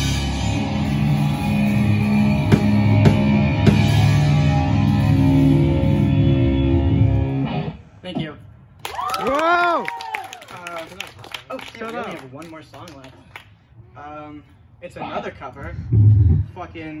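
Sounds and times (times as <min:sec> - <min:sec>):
live rock band playing: 0:00.0 - 0:07.7.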